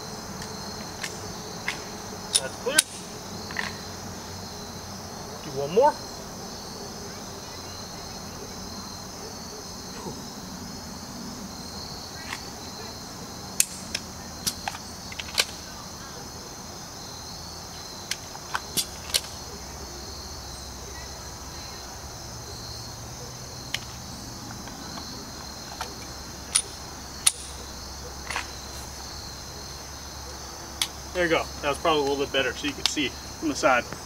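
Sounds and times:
insects chirring: 0.0s - 34.0s
pistol clicks and clacks: 26.5s - 27.6s.

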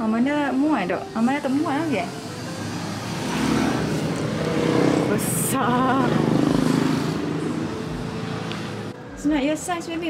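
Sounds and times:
vehicle engine running: 0.8s - 8.9s.

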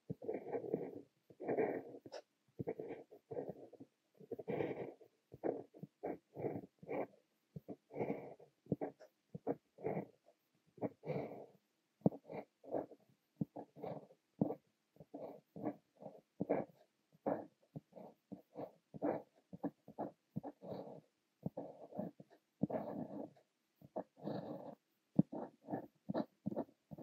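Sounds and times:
fountain pen writing on paper: 0.0s - 27.0s.

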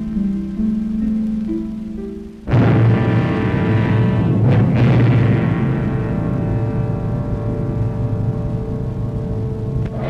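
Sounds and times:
low rumble: 0.0s - 10.0s
orchestral sustained chord: 0.0s - 10.0s.

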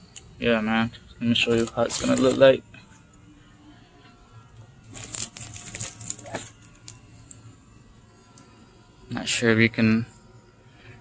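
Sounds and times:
plastic wrap crinkling: 1.4s - 2.6s, 4.8s - 7.4s.

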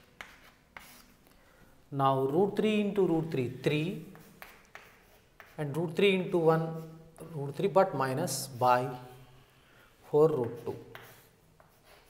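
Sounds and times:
faint chalk scratching: 0.0s - 1.7s, 2.8s - 12.0s
chalk taps on chalkboard: 4.1s - 5.6s, 10.4s - 12.0s.

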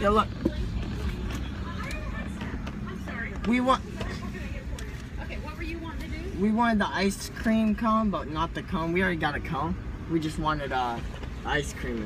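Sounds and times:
faint voices: 0.0s - 6.5s
car engine idling: 0.0s - 12.0s.

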